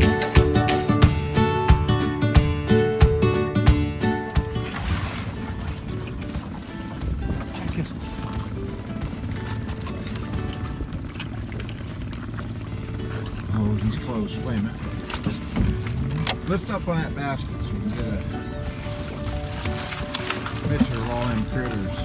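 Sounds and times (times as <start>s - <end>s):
low rumble of wind and boat: 3.6s - 22.0s
faint music: 4.1s - 22.0s.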